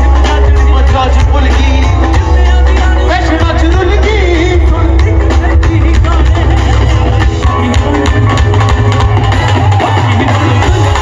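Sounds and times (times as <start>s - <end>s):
man singing ornamented line: 0.0s - 9.0s
live pop band with drums and bass: 0.0s - 11.0s.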